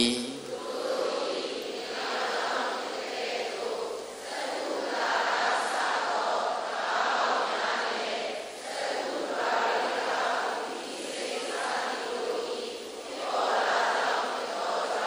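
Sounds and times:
group chanting in unison: 0:00.0 - 0:15.0.

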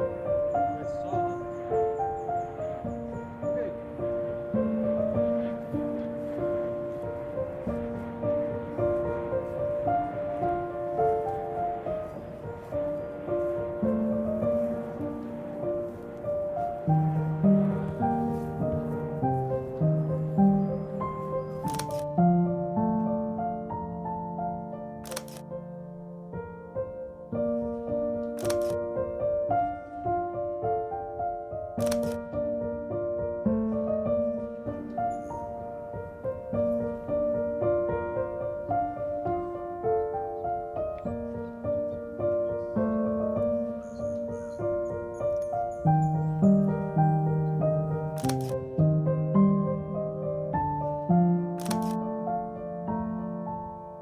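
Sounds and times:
soft background music: 0:00.0 - 0:54.0
camera shutter double click: 0:21.7 - 0:22.2, 0:25.0 - 0:25.4, 0:28.3 - 0:28.8, 0:31.8 - 0:32.2, 0:48.2 - 0:48.6, 0:51.6 - 0:52.0.

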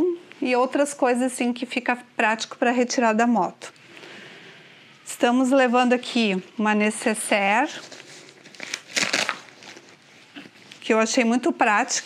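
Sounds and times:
fabric bag rustling: 0:07.2 - 0:12.0.

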